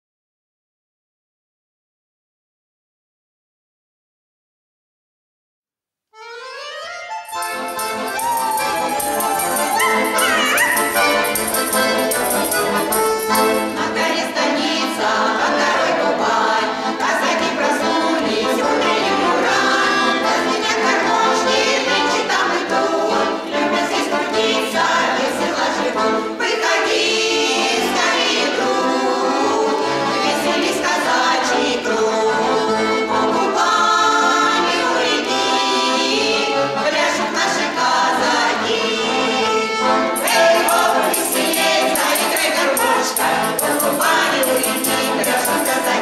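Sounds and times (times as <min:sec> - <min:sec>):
accordion: 0:06.1 - 0:46.0
women singing folk song: 0:07.7 - 0:46.0.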